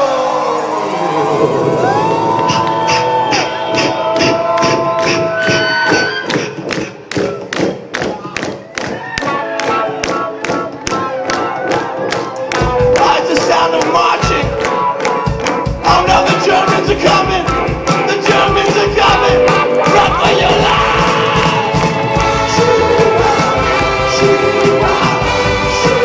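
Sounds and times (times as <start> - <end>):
bass and drums: 0.0 - 26.0
horns: 0.5 - 7.3, 9.1 - 26.0
clapping beat: 2.5 - 20.4
singing: 15.8 - 26.0.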